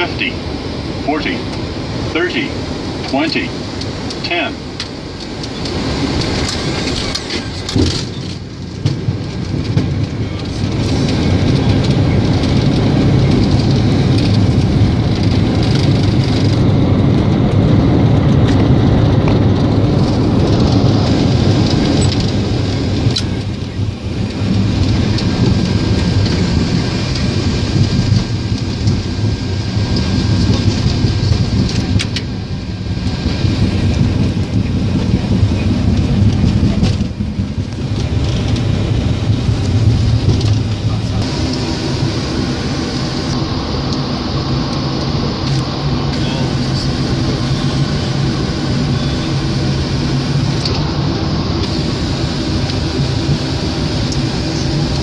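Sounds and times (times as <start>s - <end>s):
jet engines at high thrust: 0.0s - 55.0s
rushing air: 0.0s - 55.0s.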